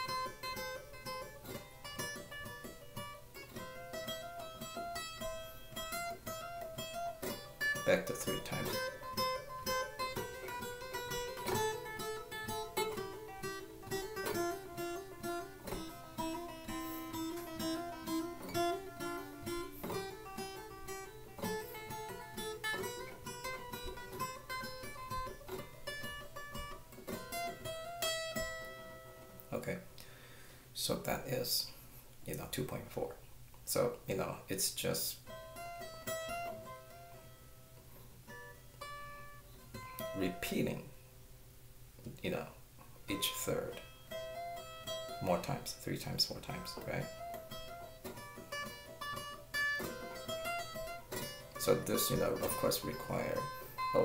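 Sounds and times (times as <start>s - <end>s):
acoustic guitar legato run: 0.0s - 30.6s, 34.8s - 40.9s, 42.3s - 54.0s.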